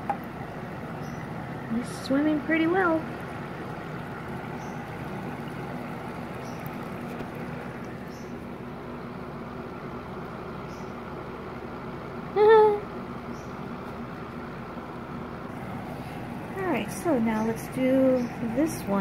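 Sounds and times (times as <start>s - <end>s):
low background hum and hiss: 0.0s - 19.0s.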